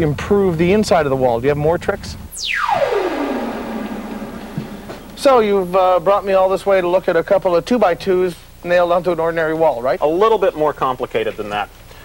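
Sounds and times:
synthesizer falling swoop: 0:02.4 - 0:06.4
held low synth tone: 0:02.4 - 0:06.5.

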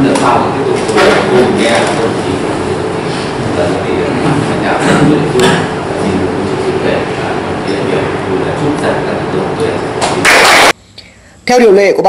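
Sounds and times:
man speaking indistinctly: 0:00.0 - 0:10.2.

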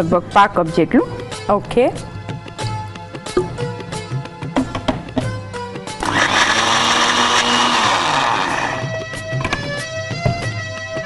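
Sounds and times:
mixer grinder running: 0:06.0 - 0:09.0.

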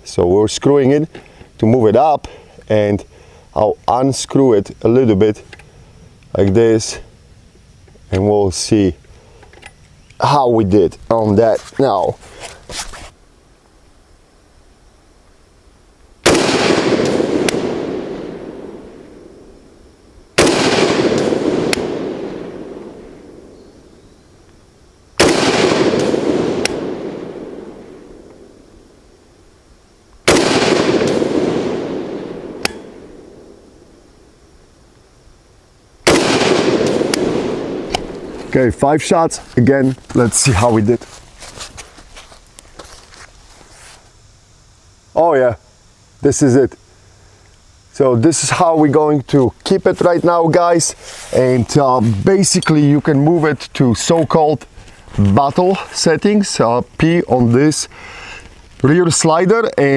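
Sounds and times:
rustling on ground mat and grass: 0:03.9 - 0:14.1, 0:36.4 - 0:44.8, 0:47.9 - 0:59.9
light scuffs: 0:11.4 - 0:13.2, 0:39.3 - 0:44.2, 0:50.9 - 0:52.3
rifle shots: 0:16.2 - 0:19.0, 0:20.4 - 0:23.5, 0:25.2 - 0:28.5, 0:30.3 - 0:33.6, 0:36.0 - 0:38.6
rolling gunshot echo: 0:16.3 - 0:19.0, 0:20.4 - 0:23.5, 0:25.2 - 0:28.1, 0:30.3 - 0:33.6, 0:36.1 - 0:38.4
faint sharp ticks: 0:47.4 - 0:47.6.

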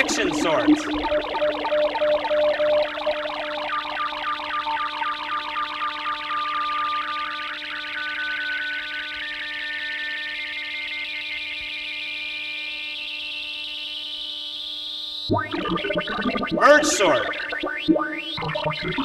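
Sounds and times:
computer-generated blips: 0:15.3 - 0:19.0.

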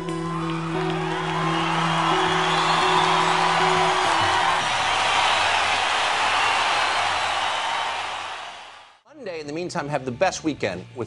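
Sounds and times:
audience applause: 0:00.1 - 0:09.0.

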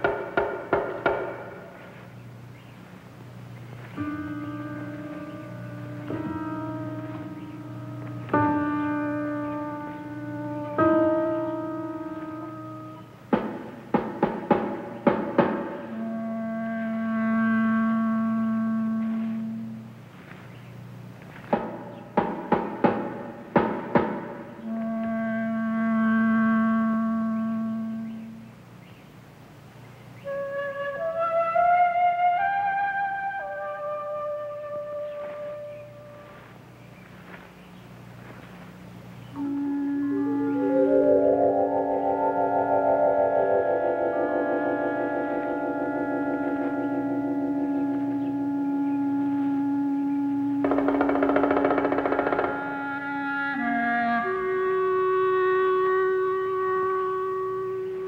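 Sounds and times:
steady low hum: 0:00.0 - 0:58.0
suspense film score music: 0:03.8 - 0:20.0, 0:39.3 - 0:54.2.

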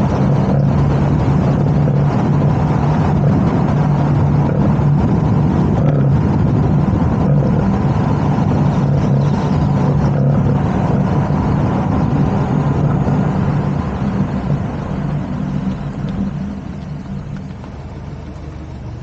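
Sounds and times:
car engine drone: 0:00.0 - 0:19.0
tyre and wind noise: 0:00.0 - 0:19.0.

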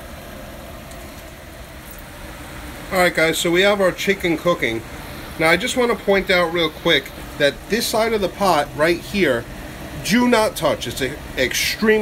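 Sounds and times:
gas burner rumble and hiss: 0:00.0 - 0:12.0.

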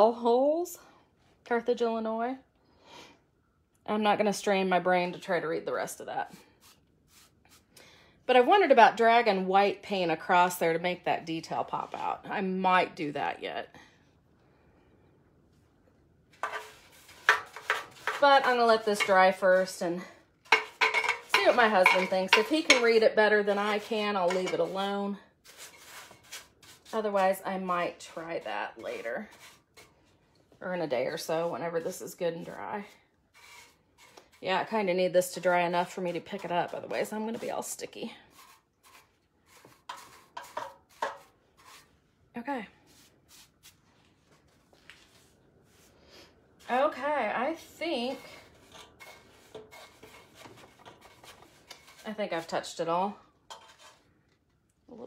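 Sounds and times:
paintbrush swishing: 0:06.5 - 0:07.7, 0:42.8 - 0:45.9
paintbrush knocking on metal can: 0:20.5 - 0:23.0, 0:24.2 - 0:24.7.

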